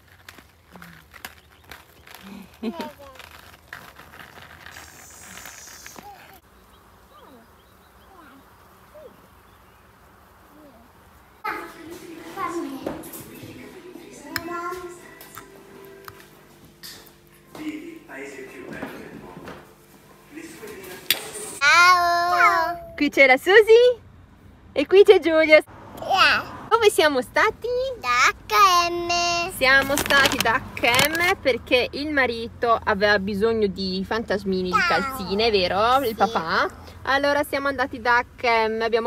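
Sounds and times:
small footsteps: 0.0 - 6.5, 11.4 - 21.4
roller-skate wheels on asphalt: 0.0 - 9.8, 10.4 - 22.9, 25.7 - 39.0
brief hiss: 4.7 - 6.4
faint chirping calls: 4.7 - 11.5.

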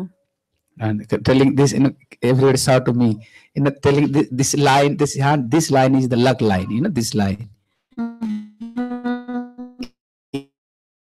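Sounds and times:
instrument playing steady notes: 8.0 - 9.9.

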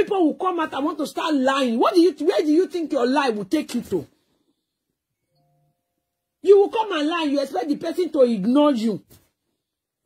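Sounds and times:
faint steady electronic tone: 4.5 - 6.4.

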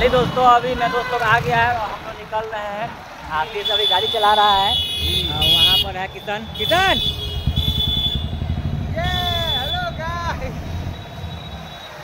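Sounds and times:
motorcycle engine rumbling: 4.7 - 12.0.

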